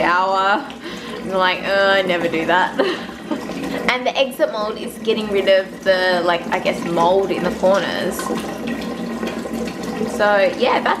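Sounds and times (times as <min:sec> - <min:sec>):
kitchen tap running: 0:00.0 - 0:11.0.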